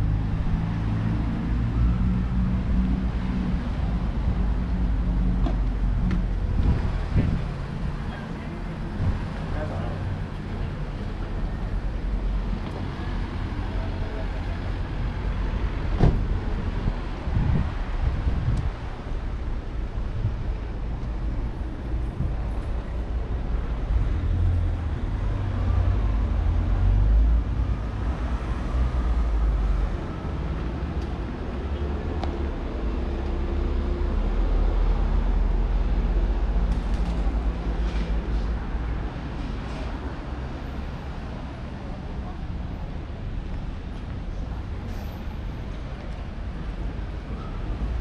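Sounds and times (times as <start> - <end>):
rumble of passing cars: 0.0 - 48.0.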